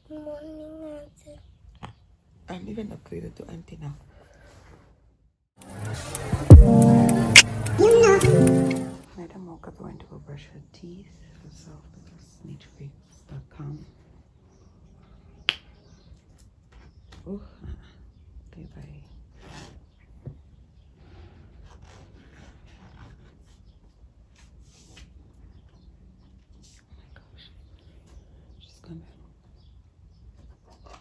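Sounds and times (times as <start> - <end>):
sharp click: 5.6 - 8.9.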